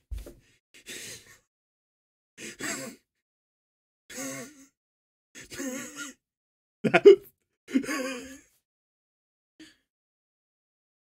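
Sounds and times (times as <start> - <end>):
man laughing breathily: 6.9 - 8.5.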